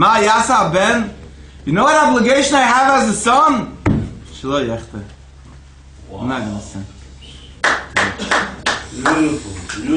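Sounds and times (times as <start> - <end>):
person clapping hands: 7.6 - 9.2.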